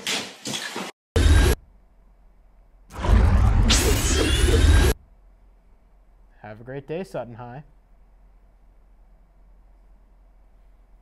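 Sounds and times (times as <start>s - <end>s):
sci-fi whoosh: 2.9s - 5.0s.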